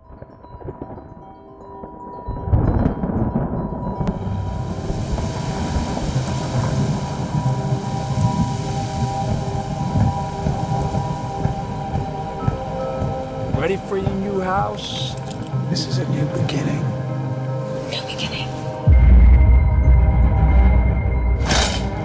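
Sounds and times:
sustained chord tones: 0.0 - 22.0
low dense rumble: 2.4 - 14.4
rain-like hiss: 4.0 - 18.9.

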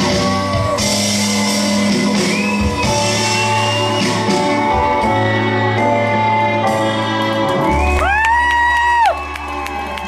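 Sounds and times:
audience cheering and clapping: 6.8 - 10.0
high-pitched whoop: 7.7 - 10.0.

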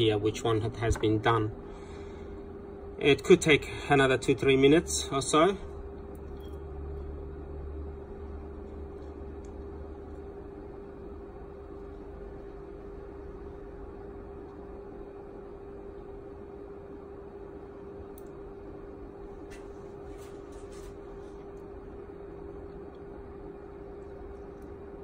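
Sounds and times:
steady tonal hum: 0.0 - 25.0.

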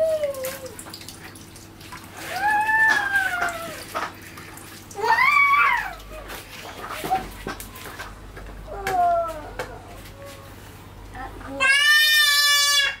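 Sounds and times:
child's high-pitched squeal: 2.2 - 3.8, 5.0 - 6.0, 11.6 - 13.0.

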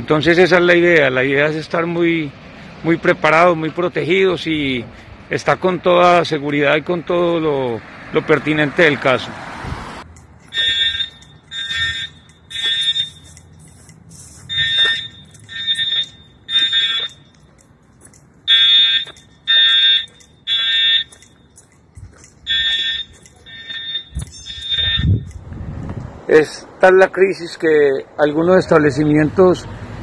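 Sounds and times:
smoke alarm beeping: 10.5 - 13.4, 14.5 - 17.3, 18.5 - 21.2, 22.5 - 25.3.

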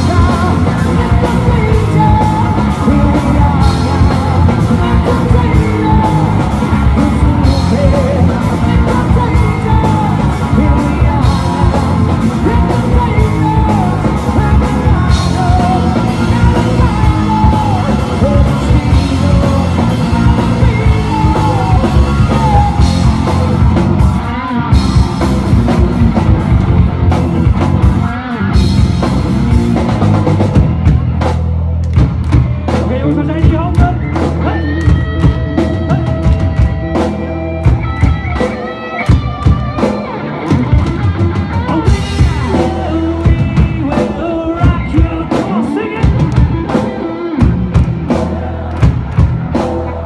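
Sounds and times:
live rock band playing: 0.0 - 50.0.

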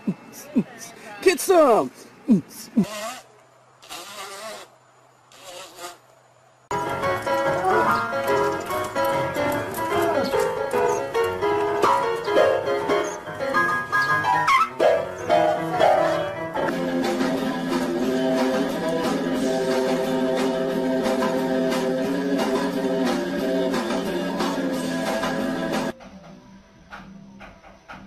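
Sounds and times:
piano notes: 6.7 - 21.8
music: 6.7 - 28.0.

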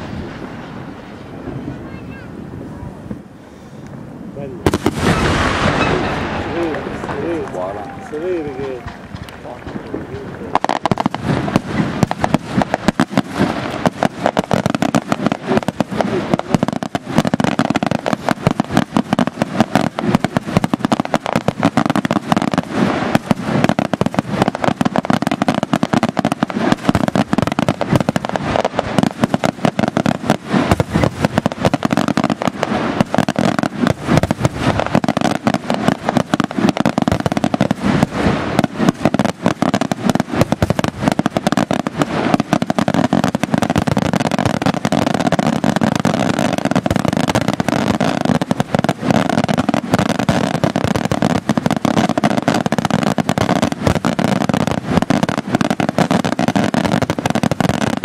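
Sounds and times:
fireworks shell bursts and crackling: 8.4 - 58.0.

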